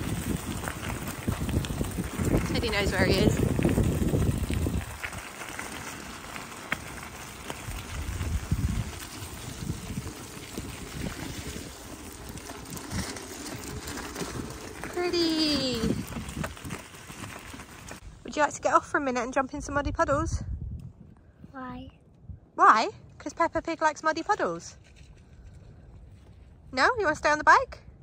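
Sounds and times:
bicycle tyres on wet gravel: 0:00.0 - 0:18.6
wind buffeting microphone: 0:00.0 - 0:23.7.

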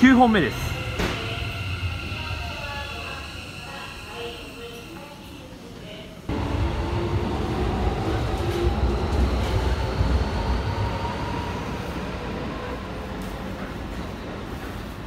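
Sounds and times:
electric train rumble: 0:00.0 - 0:05.6, 0:06.2 - 0:14.7.

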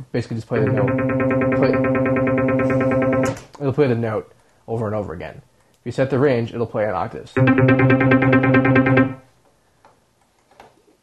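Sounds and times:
synthesizer bass arpeggio: 0:00.6 - 0:03.4, 0:07.4 - 0:09.2.

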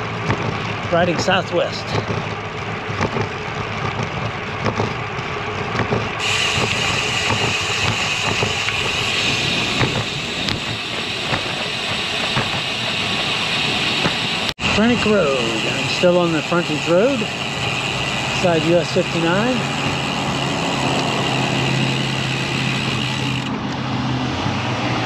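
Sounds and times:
motor traffic: 0:00.0 - 0:25.0
wind and road noise: 0:00.0 - 0:25.0.

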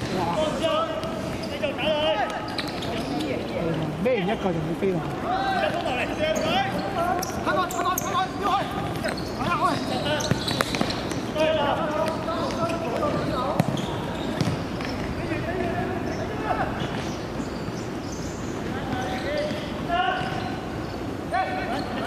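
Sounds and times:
players shouting: 0:00.2 - 0:03.0, 0:05.0 - 0:17.5.

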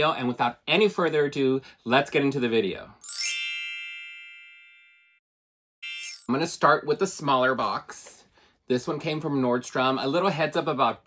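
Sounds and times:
higher shimmering chime: 0:03.0 - 0:04.6, 0:05.8 - 0:06.3
bright ringing chime: 0:03.0 - 0:05.2, 0:05.8 - 0:06.3.

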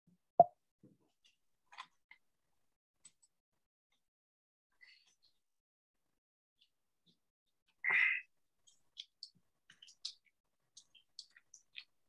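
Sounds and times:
faint clicks and taps: 0:08.6 - 0:12.0.

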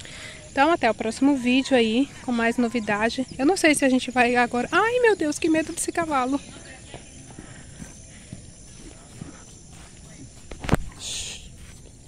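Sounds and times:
horse hooves thudding on grass: 0:01.7 - 0:12.0
brief breathy hiss: 0:10.8 - 0:11.7.

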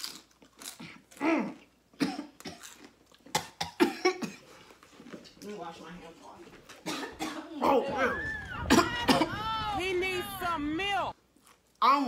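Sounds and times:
person coughing harshly: 0:01.3 - 0:02.7, 0:03.4 - 0:04.5, 0:06.8 - 0:07.6.

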